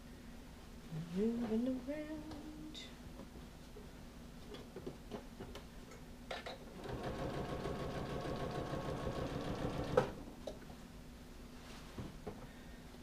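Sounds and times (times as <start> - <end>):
electric sewing machine stitching: 6.8 - 10.2.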